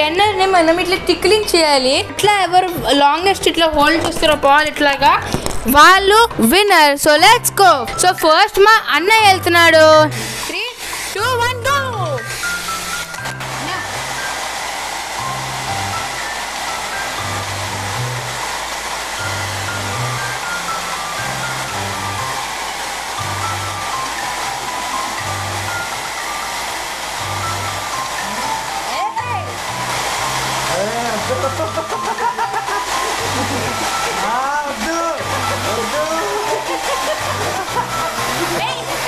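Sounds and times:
hair dryer running: 7.2s - 39.0s
background music with bass line: 27.2s - 39.0s.

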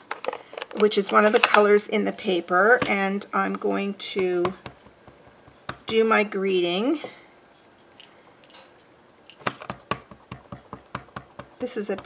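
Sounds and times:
stamp tapping on ink pad: 4.4s - 5.9s, 9.6s - 12.0s.

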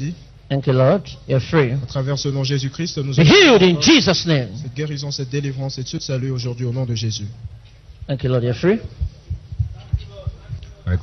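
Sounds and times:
low dull thumps: 7.3s - 11.0s.

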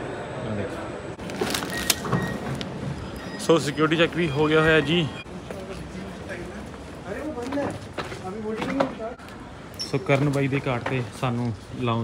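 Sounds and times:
plastic bag rustling: 1.2s - 2.0s.

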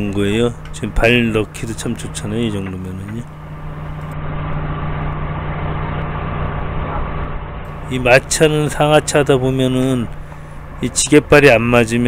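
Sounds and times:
forklift engine humming: 0.0s - 12.0s.

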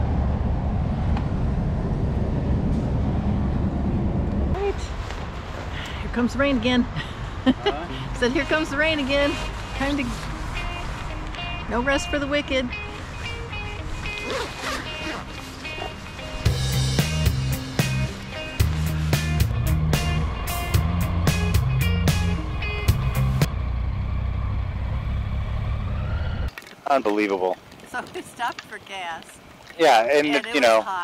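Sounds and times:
music with heavy bass beat: 16.4s - 23.5s.

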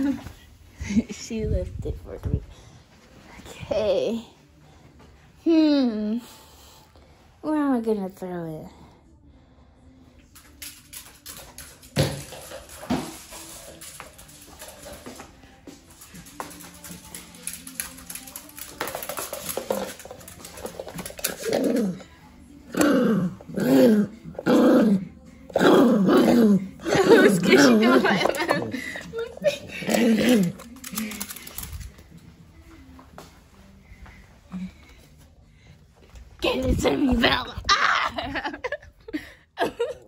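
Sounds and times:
ball hitting wood floor: 11.8s - 13.4s.

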